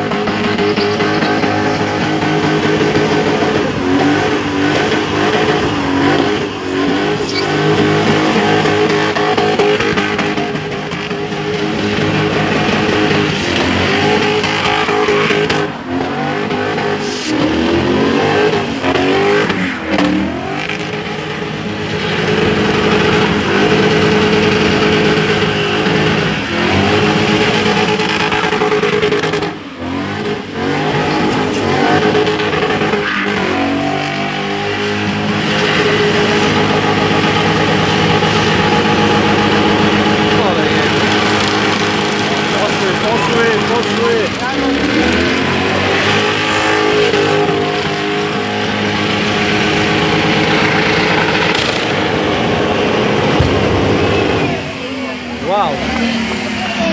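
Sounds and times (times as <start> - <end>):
car engine revving high: 0.0 - 56.9
tyres spinning on tarmac: 0.0 - 56.9.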